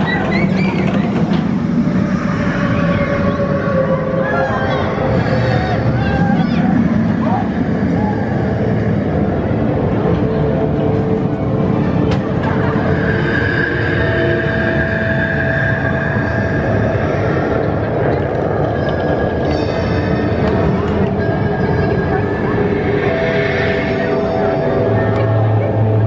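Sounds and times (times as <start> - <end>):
music: 0.0 - 26.0
people's voices: 0.0 - 26.0
roller coaster rumbling on track: 0.0 - 26.0.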